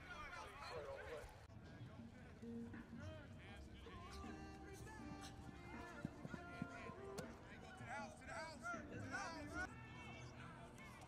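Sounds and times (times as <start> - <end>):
distant voices of players: 0.0 - 11.0.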